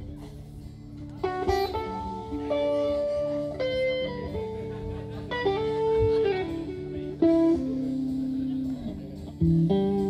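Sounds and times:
steady bass: 0:00.0 - 0:10.0
lead melody of held notes: 0:00.8 - 0:10.0
live band music: 0:00.9 - 0:10.0.

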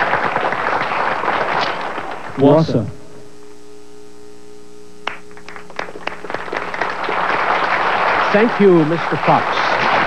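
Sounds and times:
audience applause: 0:00.0 - 0:02.6, 0:05.4 - 0:10.0.

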